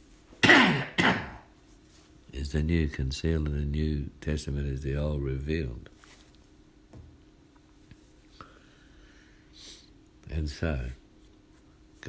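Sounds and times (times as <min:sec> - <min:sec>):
man coughing: 0:00.4 - 0:01.5.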